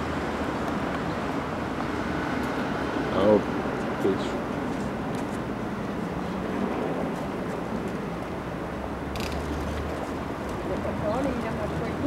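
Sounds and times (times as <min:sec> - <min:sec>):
traffic hum: 0:00.0 - 0:12.0.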